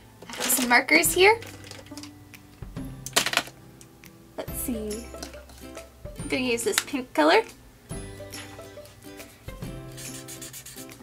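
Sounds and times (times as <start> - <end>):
background music: 0.0 - 11.0
marker rubbing on paper: 9.9 - 11.0.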